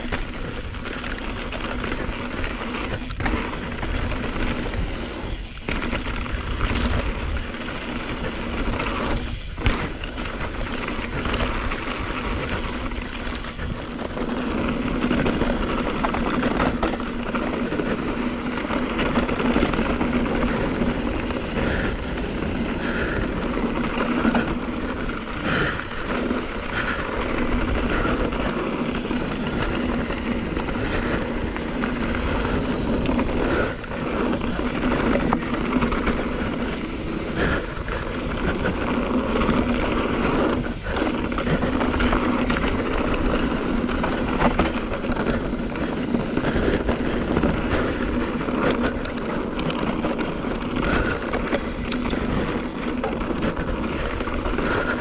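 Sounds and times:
tyres rumbling over dirt: 0.0s - 55.0s
wind buffeting microphone: 0.0s - 55.0s.

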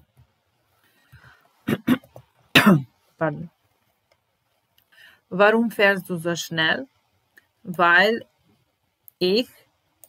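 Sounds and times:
woman coughing: 1.7s - 2.9s.

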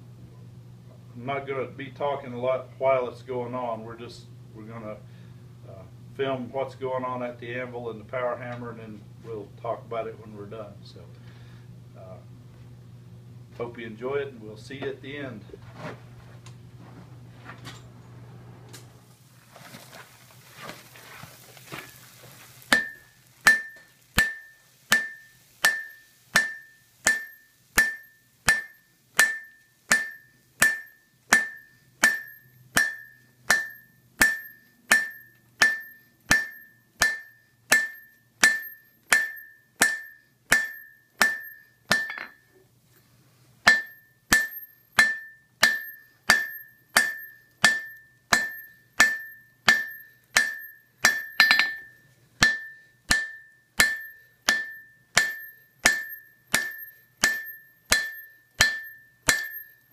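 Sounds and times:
hammer striking metal on anvil: 22.7s - 42.6s, 43.6s - 59.9s.

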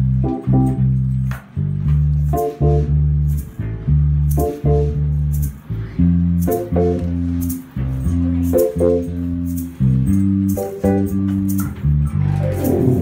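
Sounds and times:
band playing instrumental: 12.1s - 13.0s.

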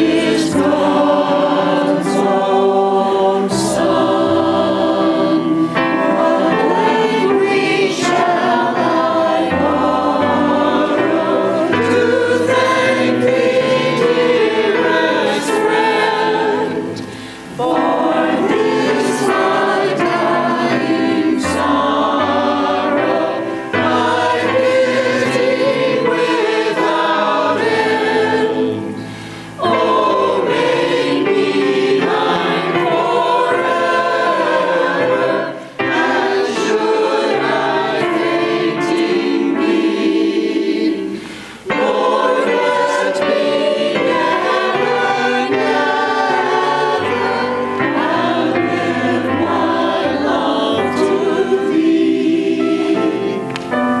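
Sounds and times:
church choir singing: 0.0s - 54.0s.

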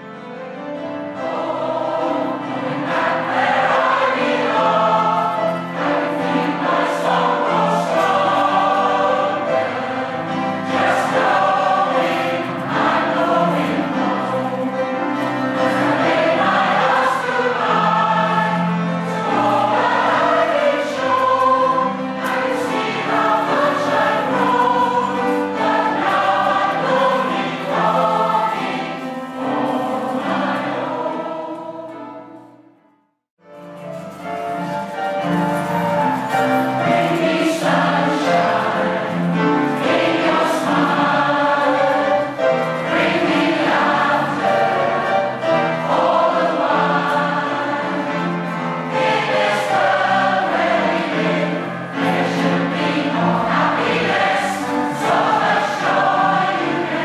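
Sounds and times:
choir singing in harmony: 0.0s - 32.8s, 33.7s - 57.0s.

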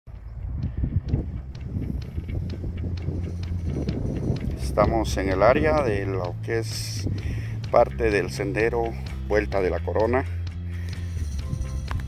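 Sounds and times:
wind buffeting microphone: 0.1s - 9.4s.

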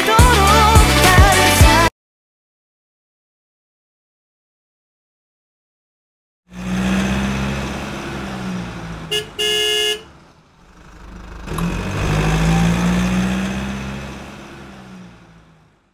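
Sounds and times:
car engine hum: 6.5s - 15.9s
car horn honking: 9.0s - 10.3s, 12.1s - 13.5s.

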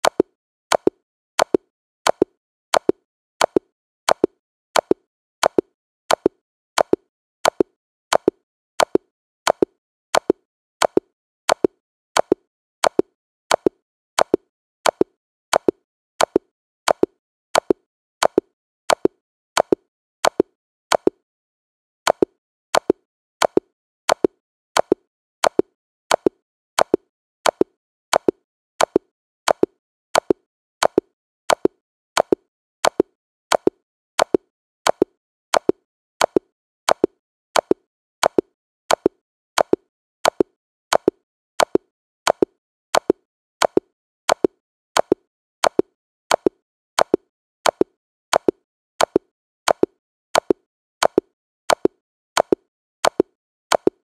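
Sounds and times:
short sharp click: 22.1s - 54.0s.

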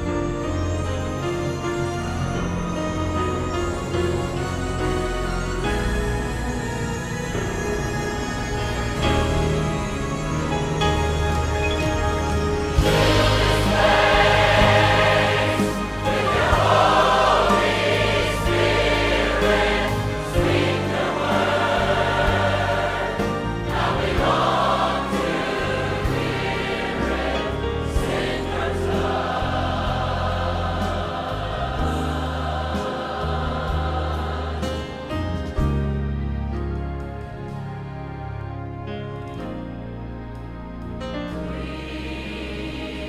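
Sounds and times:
choir singing with accompaniment: 0.0s - 38.5s, 39.8s - 43.0s.

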